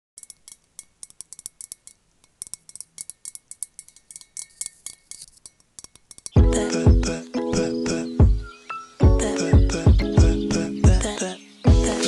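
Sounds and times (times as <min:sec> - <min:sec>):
fingernails tapping metal bottle: 0:00.2 - 0:06.4.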